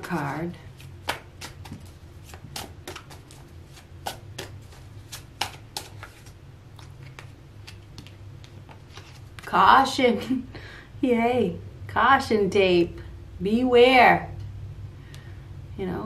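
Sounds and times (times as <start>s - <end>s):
cards shuffling: 0.0s - 9.5s.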